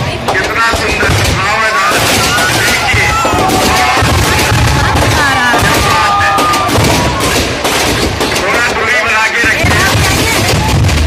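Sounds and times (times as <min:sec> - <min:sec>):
crowd shouting: 0:00.0 - 0:08.4
firecrackers cracking and banging: 0:00.0 - 0:11.0.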